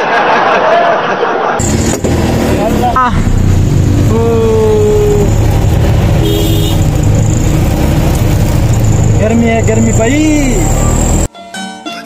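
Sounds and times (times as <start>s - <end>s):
rickshaw engine rumbling: 1.6s - 11.3s
road noise: 1.6s - 11.3s.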